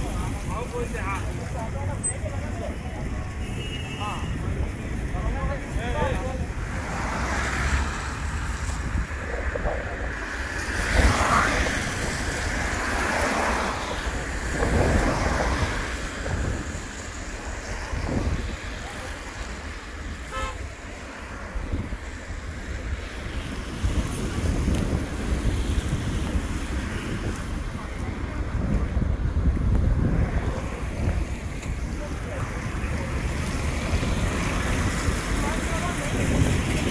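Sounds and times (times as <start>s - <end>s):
traffic on wet road: 0.0s - 36.9s
wind buffeting microphone: 0.0s - 36.9s.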